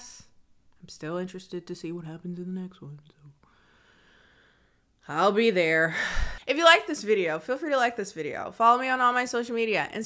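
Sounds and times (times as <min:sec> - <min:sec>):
faint breathy hiss: 0:03.4 - 0:05.0.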